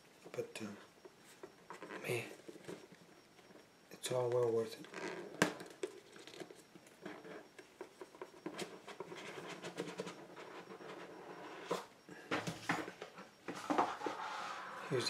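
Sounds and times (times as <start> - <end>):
boxes and packaging handled: 4.2 - 15.0.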